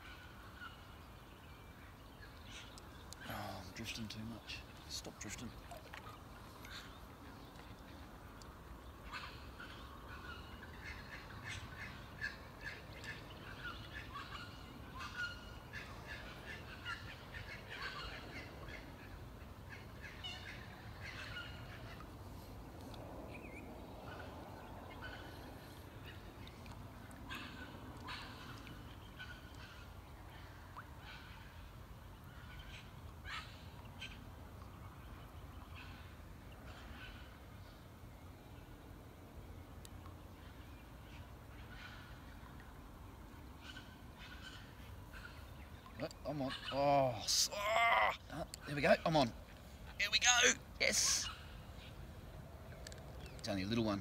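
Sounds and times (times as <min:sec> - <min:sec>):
birds chirping and calling: 0:00.0 - 0:26.5, 0:43.6 - 0:54.0.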